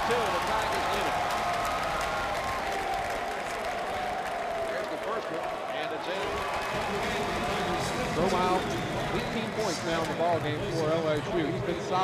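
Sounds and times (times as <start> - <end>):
applause: 0.0 - 9.7
arena crowd voices: 0.0 - 12.0.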